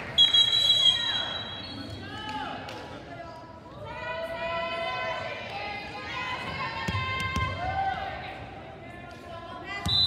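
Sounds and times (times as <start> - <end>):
high steady whistle: 0.2 - 1.8.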